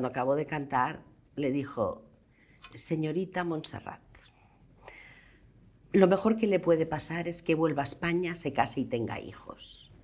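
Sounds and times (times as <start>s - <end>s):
woman speaking: 0.0s - 4.4s, 5.9s - 10.0s
soft breath: 2.2s - 2.7s, 4.3s - 5.8s.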